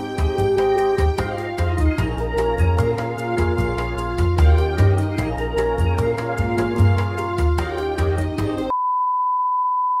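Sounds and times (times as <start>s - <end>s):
background music with beat: 0.0s - 8.7s.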